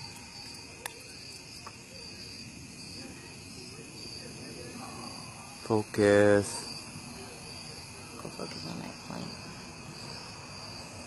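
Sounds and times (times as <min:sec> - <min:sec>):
insect chorus trilling: 0:00.0 - 0:11.0.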